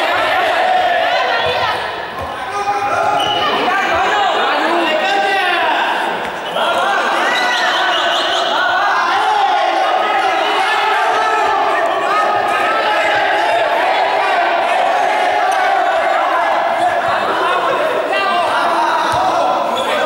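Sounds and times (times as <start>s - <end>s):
young people shouting and laughing: 0.0s - 20.0s.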